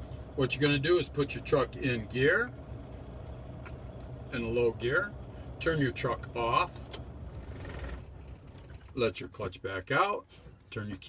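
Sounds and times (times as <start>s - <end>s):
diesel truck engine shutting off: 0.0s - 9.1s.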